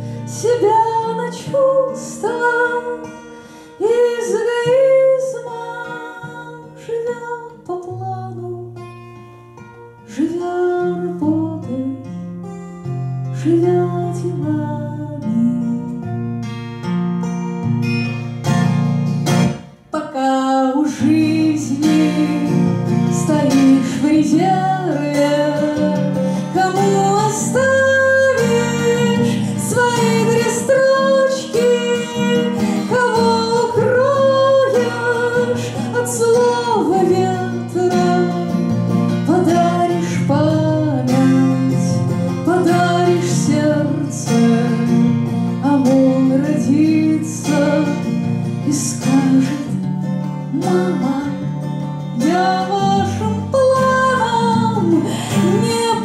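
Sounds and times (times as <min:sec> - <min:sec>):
woman singing: 0:00.0 - 0:09.0, 0:09.6 - 0:16.6, 0:19.5 - 0:56.0
acoustic guitar strummed: 0:00.0 - 0:56.0.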